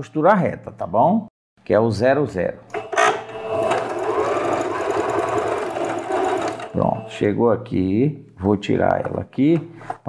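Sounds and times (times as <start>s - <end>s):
sewing machine running: 2.8s - 7.1s.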